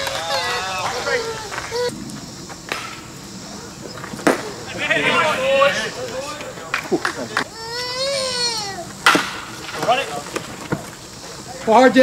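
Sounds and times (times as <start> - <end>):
crowd shouting: 0.0 - 2.0, 3.5 - 10.6
wooden bat hitting ball: 2.7 - 3.1, 4.1 - 4.6, 9.0 - 10.8.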